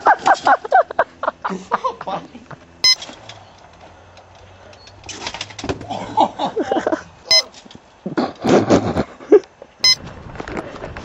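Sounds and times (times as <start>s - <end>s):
person laughing: 0.0s - 2.6s, 5.8s - 7.1s, 8.0s - 9.5s.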